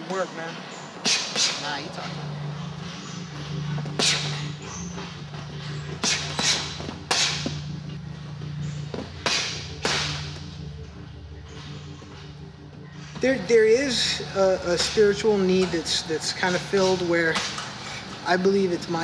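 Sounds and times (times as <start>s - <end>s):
low hum: 1.8s - 19.0s.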